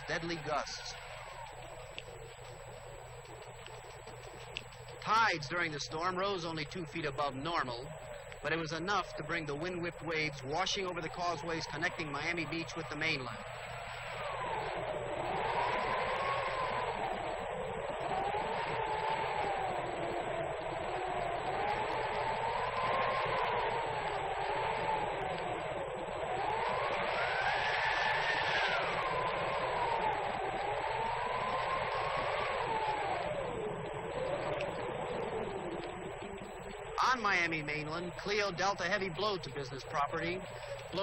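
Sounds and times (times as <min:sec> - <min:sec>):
hurricane wind howling: 0:00.0 - 0:41.0.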